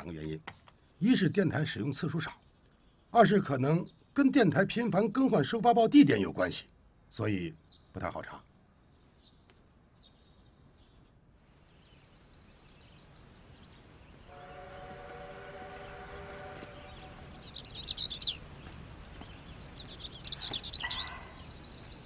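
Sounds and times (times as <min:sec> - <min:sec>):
small birds chirping: 0:00.0 - 0:15.2, 0:15.8 - 0:22.0.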